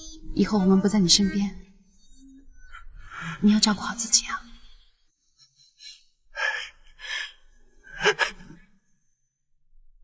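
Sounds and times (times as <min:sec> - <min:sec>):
elderly man sobbing: 0:06.4 - 0:08.6.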